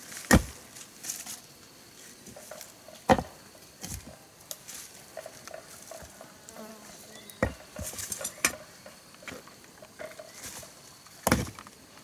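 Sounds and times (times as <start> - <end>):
tool striking soil: 0.0 - 0.6
scraping of dirt and leaves: 0.0 - 12.0
fly buzzing: 5.7 - 8.3.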